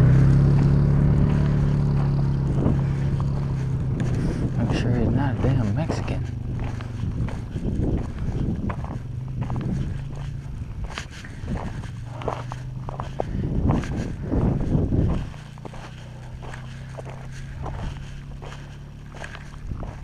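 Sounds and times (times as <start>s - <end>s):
footsteps crunching on gravel: 0.0s - 20.0s
steady low hum: 0.0s - 20.0s.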